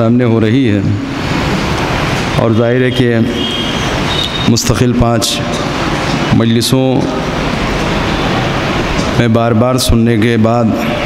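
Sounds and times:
steady rushing noise: 0.6 - 11.0.

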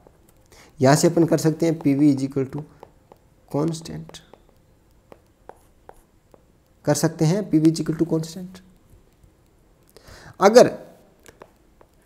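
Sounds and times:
stylus tapping on tablet screen: 0.0 - 6.8, 11.2 - 12.0
man talking: 0.8 - 2.7, 3.5 - 4.3, 6.8 - 8.7, 10.4 - 11.0.

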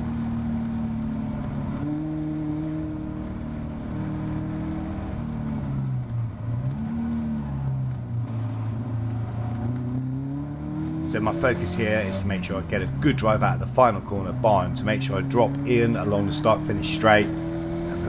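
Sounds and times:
race car engine revving: 0.0 - 18.0.

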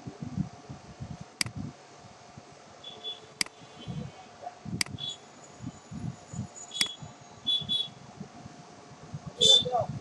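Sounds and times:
sharp click: 6.8 - 7.0.

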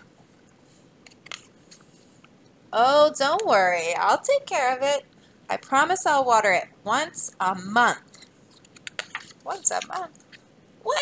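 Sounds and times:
book page turning: 8.2 - 10.4.

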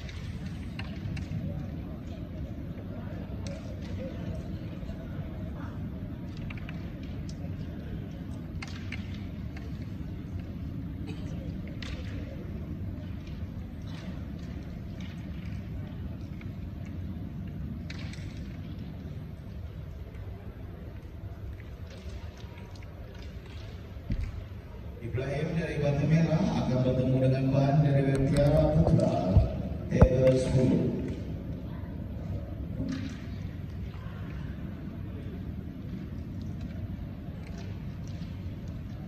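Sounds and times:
low rumble of hall background: 0.0 - 39.0.

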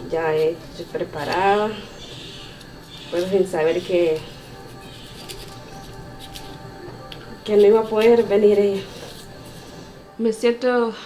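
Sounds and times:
soft background music: 0.0 - 11.0
knife scraping banana peel: 0.3 - 9.8.

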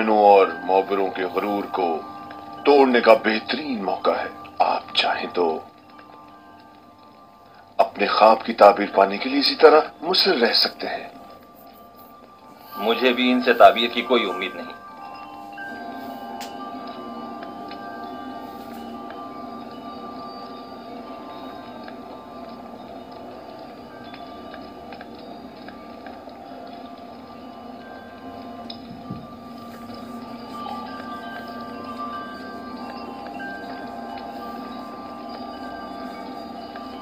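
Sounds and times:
faint chime-like notes: 0.0 - 37.0
sustained dramatic score notes: 0.0 - 37.0.

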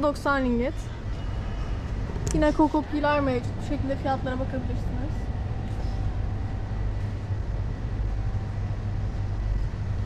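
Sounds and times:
faint steady hum: 0.0 - 10.0
supermarket background rumble: 0.0 - 10.0.

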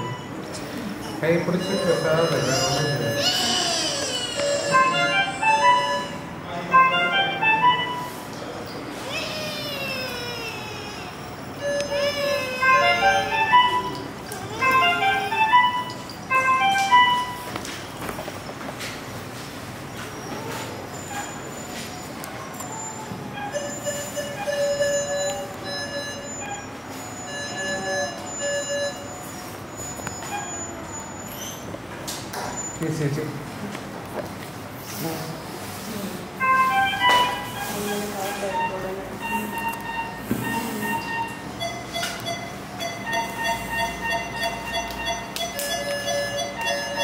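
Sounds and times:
baby crying: 2.3 - 5.4, 9.0 - 11.2, 11.9 - 13.0.

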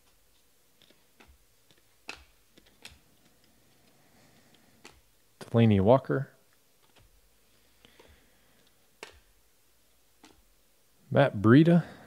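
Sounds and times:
cards flipped by hand: 0.0 - 5.6, 6.8 - 7.2, 7.8 - 9.4, 10.2 - 10.5
sharp card clicks: 0.8 - 3.5.

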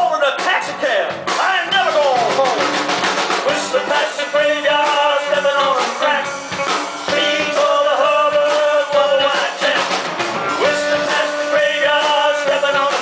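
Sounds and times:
drum kit: 0.0 - 13.0
electric bass: 0.0 - 13.0
person singing: 1.4 - 13.0
lead line with bending notes: 1.8 - 12.4.

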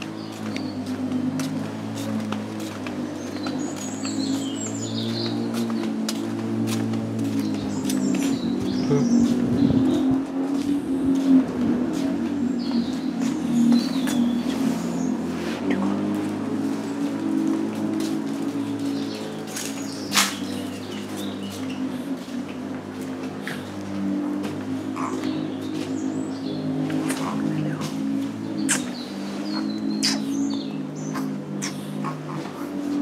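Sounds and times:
small birds chirping: 0.0 - 33.0.

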